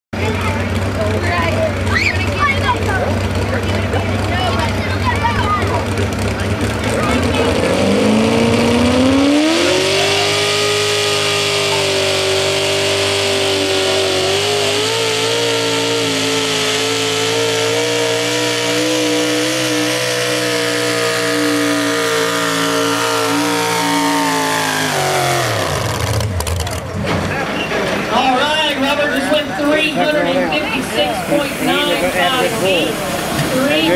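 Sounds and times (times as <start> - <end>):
truck engine revving: 0.2 - 33.9.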